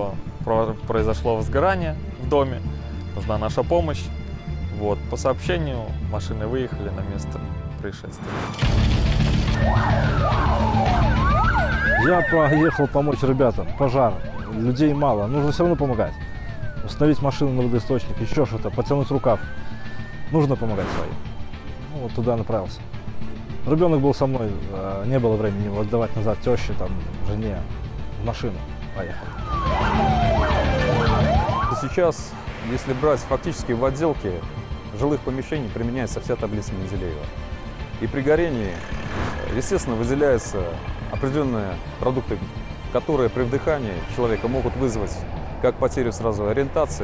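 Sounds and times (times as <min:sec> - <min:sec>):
fire truck siren wailing: 0:09.5 - 0:21.9, 0:28.8 - 0:35.0.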